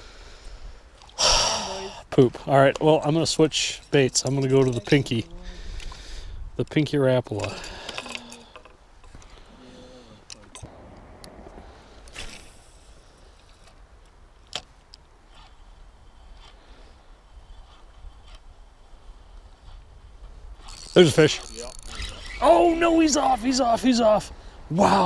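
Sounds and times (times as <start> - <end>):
low steady rumble: 10.6 - 14.4
fishing reel clicks: 20.6 - 22.4.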